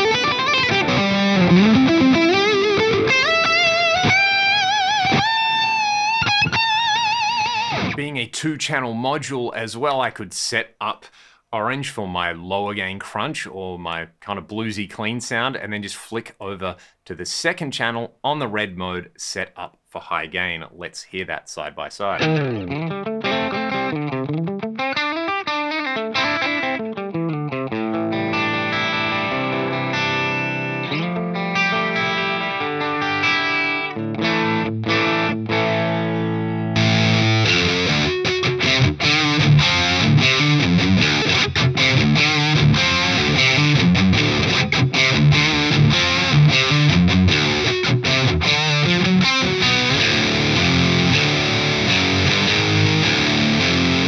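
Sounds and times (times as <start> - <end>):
electric guitar: 0.0 - 8.0, 22.2 - 54.0.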